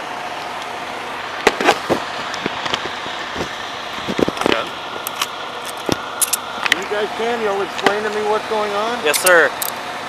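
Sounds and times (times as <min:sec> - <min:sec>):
equipment handling clicks: 0:05.1 - 0:06.8.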